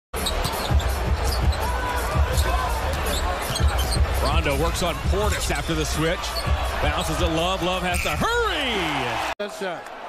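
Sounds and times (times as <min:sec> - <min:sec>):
sneakers squeaking on floor: 0:00.2 - 0:01.5, 0:02.3 - 0:04.1.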